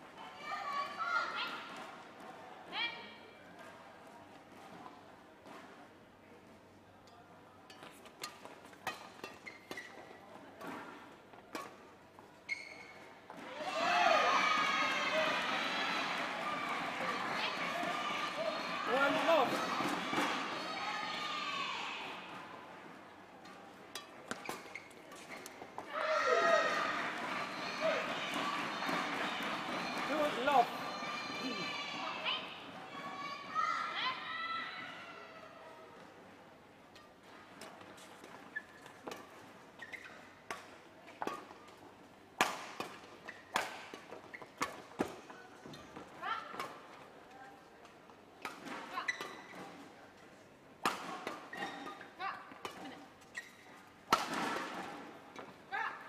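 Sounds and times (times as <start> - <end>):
loud shouting voices: 13.5 - 22.2, 25.9 - 35.5.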